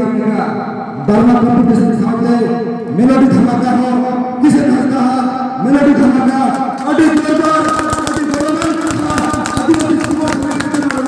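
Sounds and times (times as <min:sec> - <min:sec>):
people clapping: 0:06.1 - 0:11.0.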